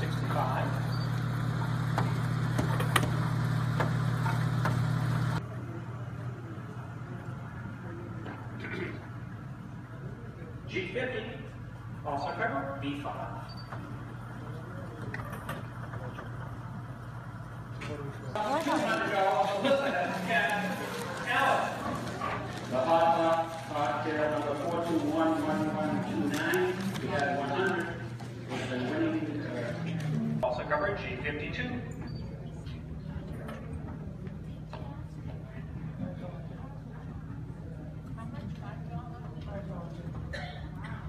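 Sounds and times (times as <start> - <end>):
motor hum: 0.0 - 10.0
people talking and exclaiming: 14.0 - 41.0.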